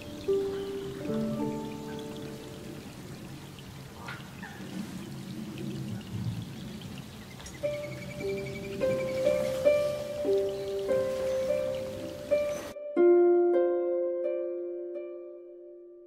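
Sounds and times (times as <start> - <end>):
slow harp music: 0.0 - 3.6, 7.6 - 16.0
rain falling on water: 0.0 - 12.8.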